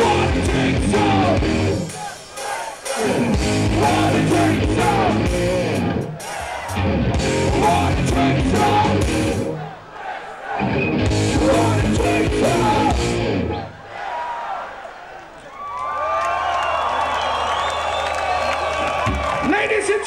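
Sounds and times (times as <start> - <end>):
metal band playing live: 0.0 - 9.6, 10.6 - 13.6.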